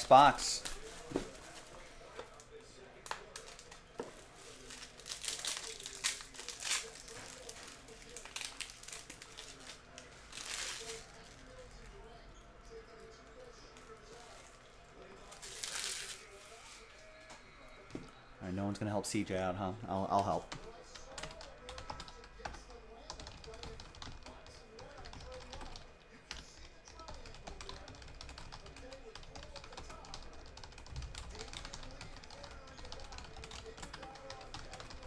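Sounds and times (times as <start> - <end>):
shrink wrap crinkling and tearing: 3.2 - 11.4, 15.3 - 16.8.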